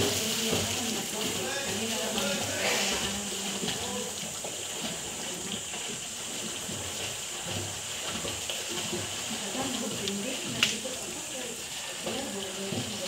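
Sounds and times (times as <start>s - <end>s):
swimmers splashing water: 0.0s - 13.0s.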